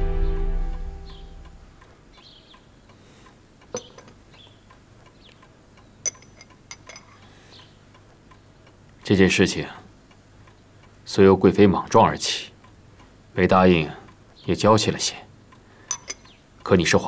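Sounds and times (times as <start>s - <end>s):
music: 0.0s - 1.6s
faint steady ticking: 0.0s - 17.0s.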